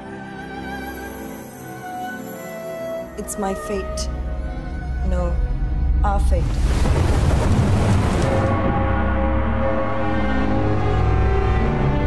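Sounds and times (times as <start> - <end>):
storm rush and rumble: 4.8 - 10.4
low music drone: 8.0 - 12.0.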